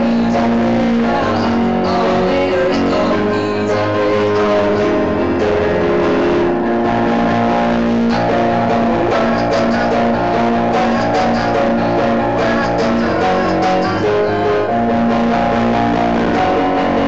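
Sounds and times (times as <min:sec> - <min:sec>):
electronic keyboard music: 0:00.0 - 0:17.0
repeated low keyboard note: 0:00.0 - 0:17.0.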